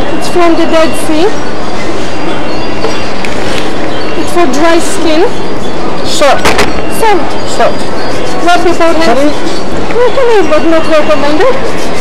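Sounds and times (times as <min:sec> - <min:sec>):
loud steady rushing noise: 0:00.0 - 0:12.0.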